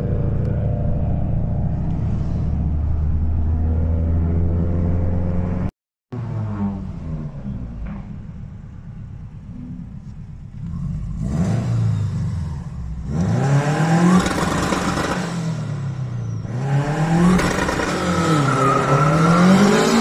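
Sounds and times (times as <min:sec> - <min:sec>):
car engine revving: 0:10.5 - 0:20.0.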